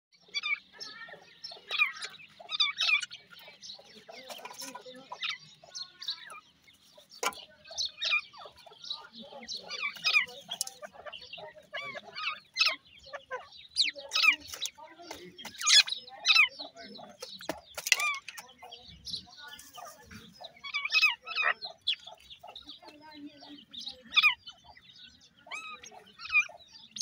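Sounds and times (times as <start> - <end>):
chicks chirping and peeping: 0.1 - 27.0.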